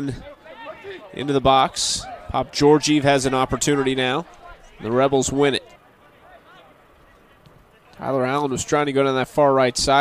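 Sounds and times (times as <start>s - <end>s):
distant voices calling out: 0.0s - 10.0s.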